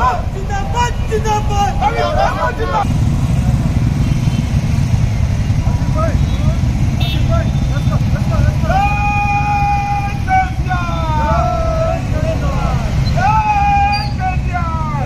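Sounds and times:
men shouting: 0.0s - 2.9s, 7.3s - 15.0s
motorcycles rumbling at low speed: 0.0s - 15.0s.

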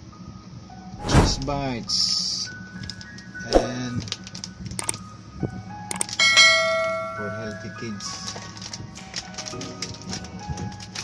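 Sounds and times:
click: 4.8s - 5.0s
bright bell chime: 6.2s - 7.8s.

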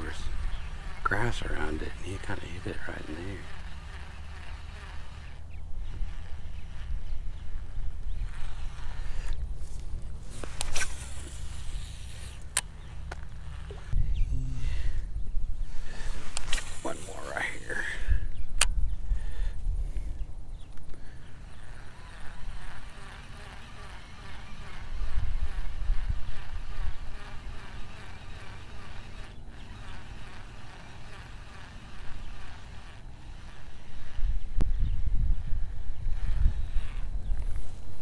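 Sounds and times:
fishing reel handling noise: 0.0s - 14.0s, 16.0s - 17.8s, 20.8s - 34.4s
low microphone rumble: 5.4s - 20.7s
sharp reel clicks: 20.8s - 34.8s.

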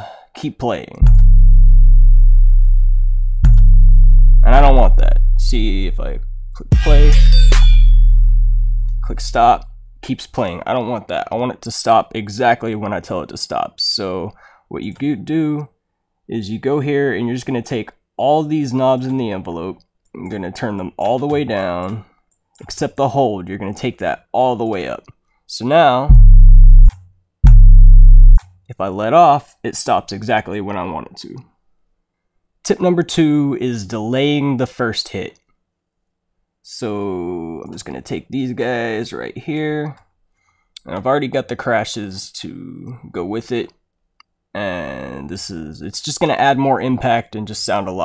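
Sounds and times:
deep sub-bass note: 1.0s - 10.0s, 26.1s - 28.4s.

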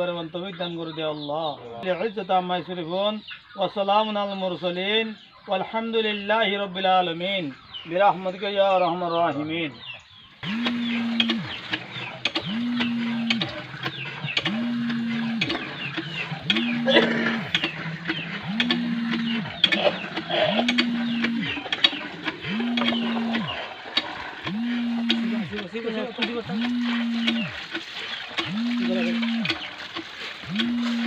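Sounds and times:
hand pump squealing: 10.4s - 31.0s
water running into metal pot: 10.6s - 31.0s.

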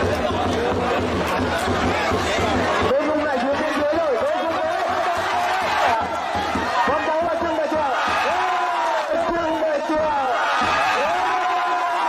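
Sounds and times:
crowd calling out: 0.0s - 12.0s
crowd chatter: 0.0s - 12.0s.

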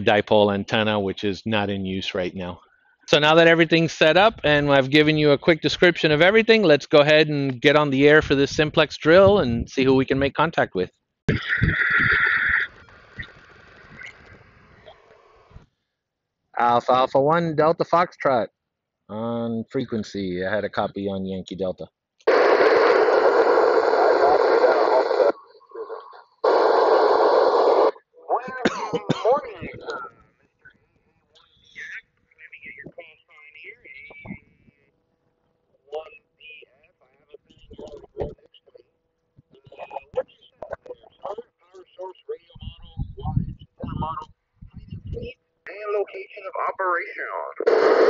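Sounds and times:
radio static hiss bursts: 11.3s - 15.6s, 22.3s - 30.1s, 31.5s - 34.5s, 39.6s - 44.2s, 45.2s - 48.0s
faint voice over radio: 23.3s - 30.1s, 31.6s - 34.4s, 35.9s - 38.8s, 39.6s - 44.2s
voice over radio speaker: 23.3s - 30.1s, 31.4s - 34.8s, 35.9s - 38.8s, 39.6s - 48.0s.

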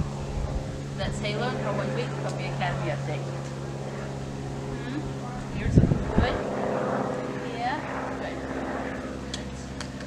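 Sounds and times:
motor humming: 0.0s - 8.6s.

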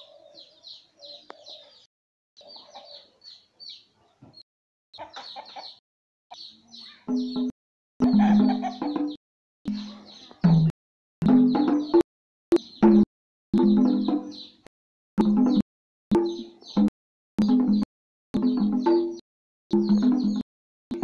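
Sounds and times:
chickens clucking: 0.0s - 4.4s, 5.0s - 10.6s.

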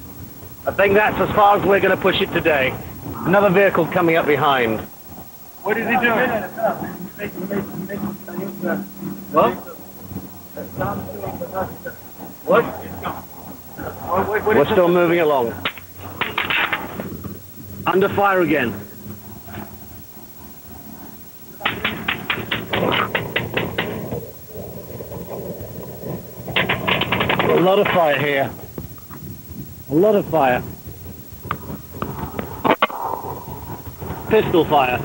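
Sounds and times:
pistol shots: 21.6s - 23.8s
gunfire burst: 21.6s - 24.0s, 26.5s - 28.5s
faint crack: 31.4s - 33.4s.

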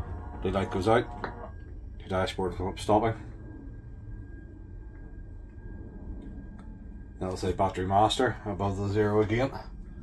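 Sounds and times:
electric bus low hum: 0.0s - 10.0s
faint high whine: 0.0s - 10.0s.

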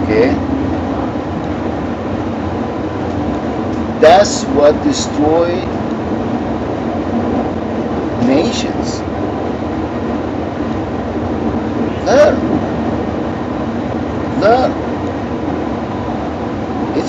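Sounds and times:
vehicle cabin rumble: 0.0s - 17.0s
man's short vocal sounds: 12.0s - 12.5s.

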